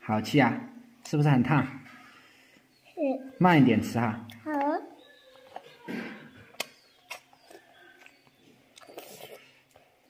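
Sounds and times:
child chewing noodles: 0:04.3 - 0:10.0.

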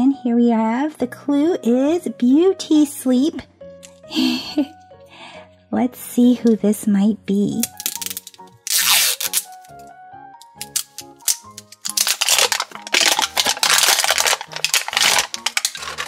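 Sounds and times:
background music: 0:00.0 - 0:16.0
wrapping being ripped: 0:07.6 - 0:16.0.

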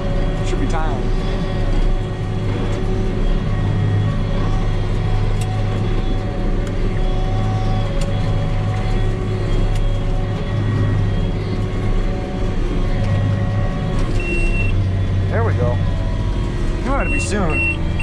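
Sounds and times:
tractor engine running: 0:00.0 - 0:18.0
short high beep: 0:14.2 - 0:14.8.

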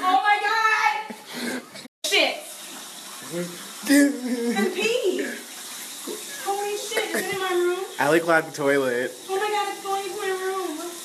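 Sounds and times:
water running from toilet: 0:00.0 - 0:11.0.

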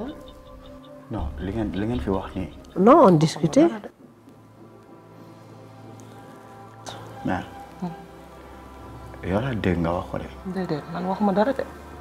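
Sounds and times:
soft background music chords: 0:00.0 - 0:12.0.

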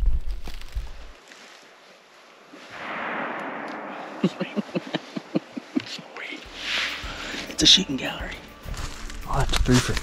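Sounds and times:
distant gunshot echoing: 0:02.8 - 0:04.6
people laughing: 0:04.2 - 0:06.1.

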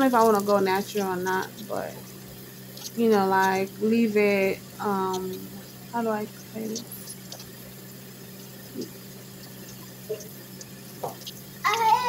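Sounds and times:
shower water running: 0:00.0 - 0:12.0
steady low hum: 0:00.0 - 0:12.0.

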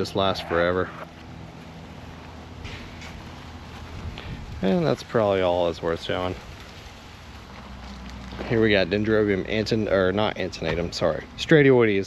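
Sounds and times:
steady low hum: 0:00.0 - 0:12.0
soft rustle: 0:00.8 - 0:05.1, 0:05.9 - 0:08.8.

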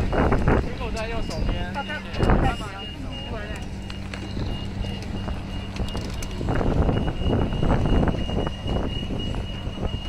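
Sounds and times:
wind gust on microphone: 0:00.0 - 0:02.8, 0:04.2 - 0:10.0
steady low machine hum: 0:00.0 - 0:10.0.

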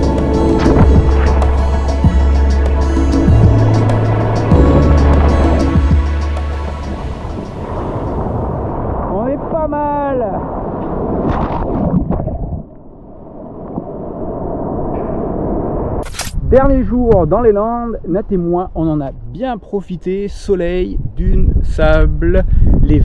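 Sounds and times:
background music with heavy bass: 0:00.0 - 0:08.5
ocean surf washing: 0:00.0 - 0:12.1.

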